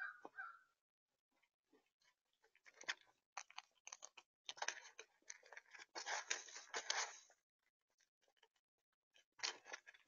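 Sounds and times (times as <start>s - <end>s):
squirrel crunching seeds: 2.0s - 7.3s, 8.2s - 10.0s.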